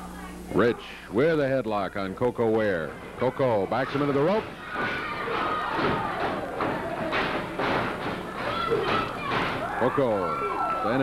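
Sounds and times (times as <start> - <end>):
crowd voices: 2.8 - 11.0
bodies thudding on ring boards: 3.8 - 10.2.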